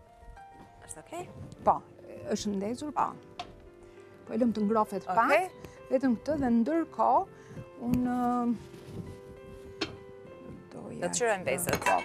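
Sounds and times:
soft background music: 0.0 - 12.0
pot lid clink: 11.7 - 12.0.

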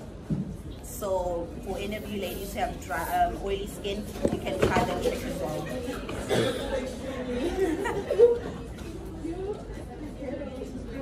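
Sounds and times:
indistinct chatter of voices: 0.8 - 11.0.

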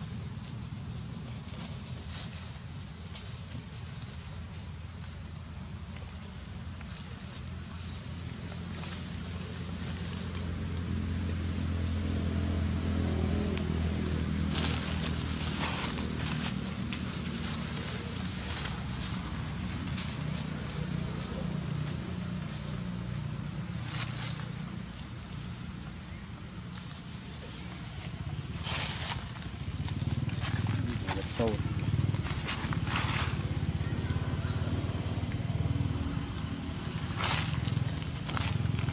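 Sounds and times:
dry leaves rustling and crunching: 0.0 - 38.9
steady low hum: 0.0 - 38.9.

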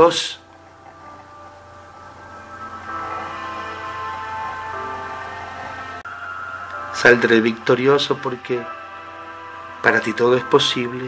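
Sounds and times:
soft music of held notes: 0.0 - 11.0.

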